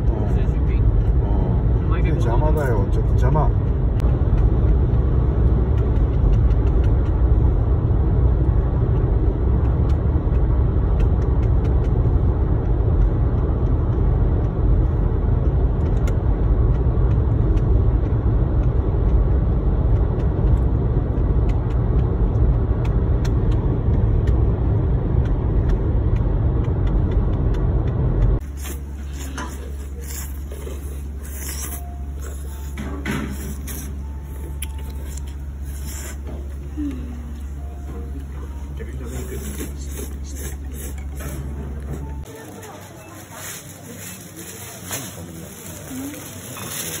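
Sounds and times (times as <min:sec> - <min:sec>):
car road and engine noise: 0:00.0 - 0:47.0.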